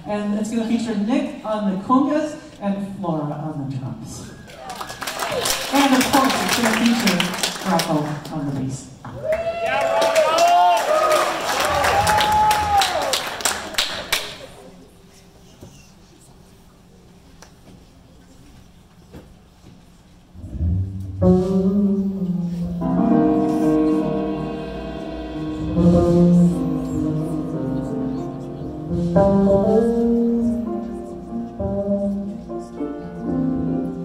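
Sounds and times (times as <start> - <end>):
audience whooping and cheering: 4.4 - 5.6, 9.2 - 14.4
scattered clapping: 4.6 - 8.4, 9.7 - 14.5
jazz ensemble playing held chords: 20.4 - 34.0.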